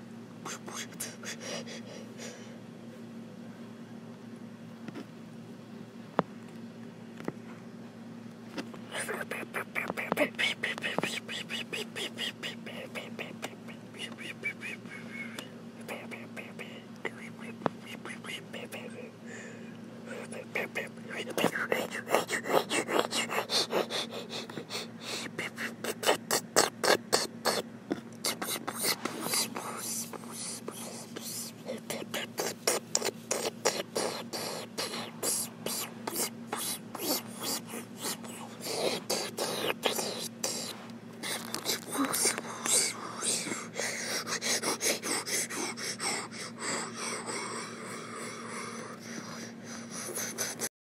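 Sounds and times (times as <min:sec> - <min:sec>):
faint low hum: 0:00.0 - 0:50.7
person whispering: 0:00.4 - 0:01.8, 0:08.9 - 0:19.2, 0:20.1 - 0:27.6, 0:28.2 - 0:50.7.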